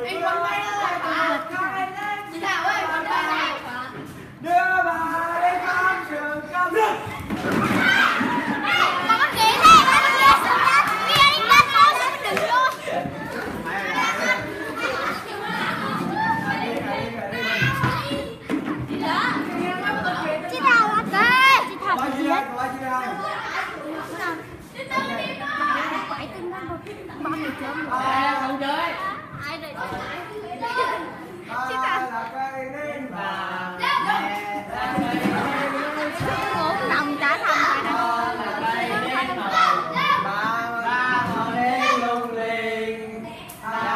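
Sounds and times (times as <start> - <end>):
children chattering and laughing: 0.0 - 43.9.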